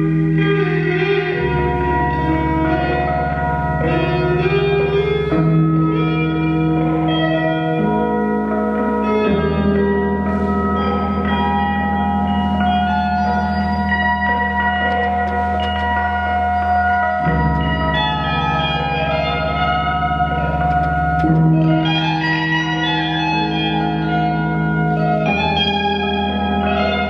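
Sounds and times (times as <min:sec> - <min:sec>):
ambient electric guitar drone: 0:00.0 - 0:27.0.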